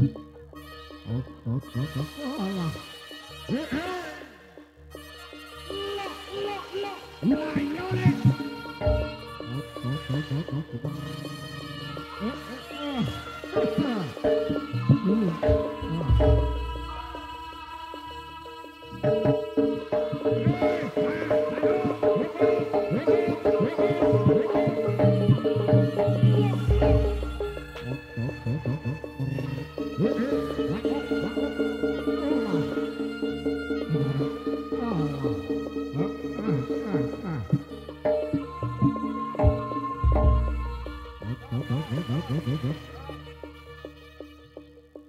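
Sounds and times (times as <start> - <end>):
hand drums with bending pitch: 8.0 - 12.2, 13.6 - 17.4, 19.0 - 33.0, 33.8 - 42.8
ringing metal percussion: 8.1 - 9.5, 18.9 - 28.8.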